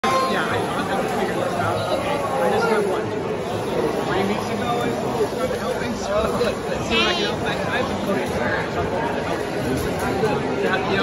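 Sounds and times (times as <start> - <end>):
people talking in hall: 0.0 - 11.0.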